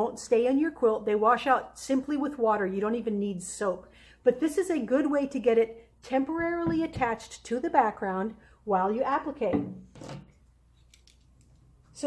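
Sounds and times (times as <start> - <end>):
faint clicks of handled objects: 10.3 - 11.8.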